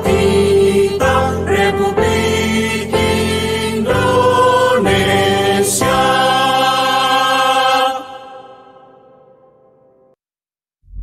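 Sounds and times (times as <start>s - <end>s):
choir singing a march: 0.0s - 9.1s.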